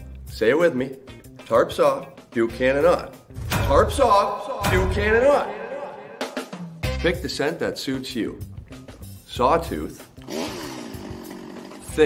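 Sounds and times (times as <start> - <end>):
chainsaw running: 10.3 - 11.9.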